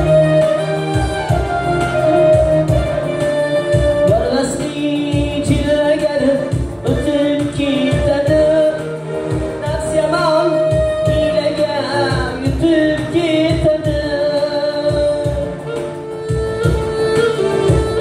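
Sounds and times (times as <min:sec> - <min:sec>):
clarinet: 0:00.0 - 0:12.5, 0:14.9 - 0:18.0
keyboard: 0:00.0 - 0:18.0
keyboard drum beat: 0:00.0 - 0:18.0
young man singing into microphone: 0:02.7 - 0:18.0.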